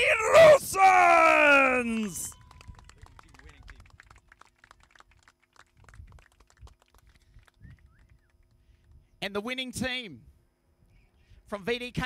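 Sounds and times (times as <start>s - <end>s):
faint clapping: 1.4s - 8.6s.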